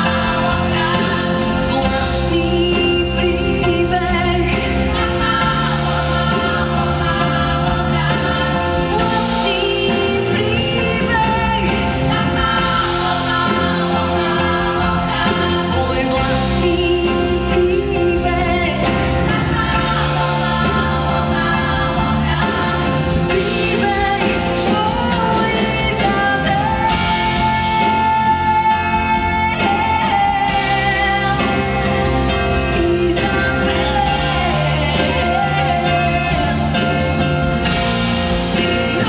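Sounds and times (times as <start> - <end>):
choir singing held chords: 0.0 - 3.2, 4.3 - 17.6, 18.2 - 39.0
instrumental accompaniment: 0.0 - 39.0.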